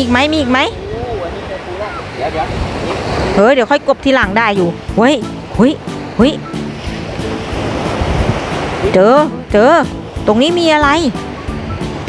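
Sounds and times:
sea surf washing onto beach: 0:00.0 - 0:12.0
background music: 0:03.7 - 0:12.0.

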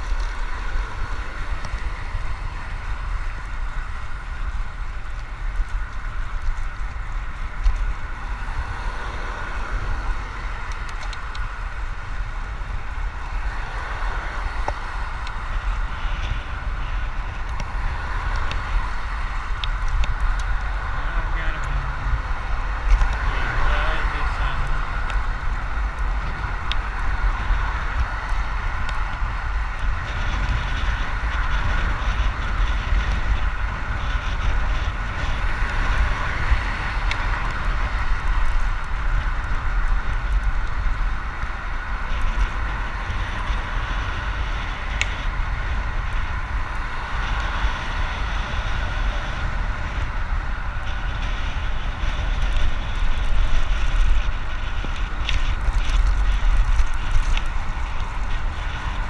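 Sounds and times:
bicycle tyres humming on asphalt: 0:00.0 - 0:59.0
wind rumble on microphone: 0:00.0 - 0:59.0.

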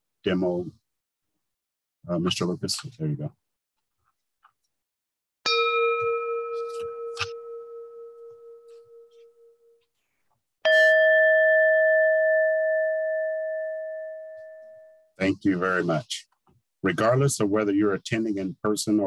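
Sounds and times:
low electronic timer ding: 0:05.5 - 0:09.5, 0:10.7 - 0:15.0
high electronic timer ding: 0:10.7 - 0:14.9.

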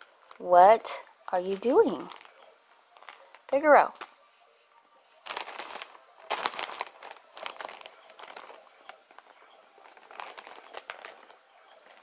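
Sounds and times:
plastic mailer bag crinkling: 0:01.4 - 0:04.1, 0:05.2 - 0:12.0.

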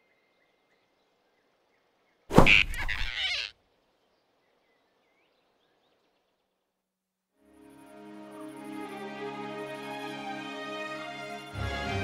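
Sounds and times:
faint forest ambience: 0:00.0 - 0:12.0
cartoon squirrel squeal: 0:02.4 - 0:03.5.

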